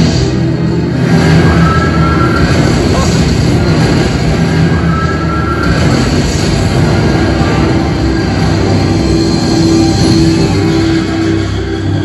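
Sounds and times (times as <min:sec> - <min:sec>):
film music over speakers: 0:00.0 - 0:12.0
rumble of wheels on track: 0:00.0 - 0:12.0.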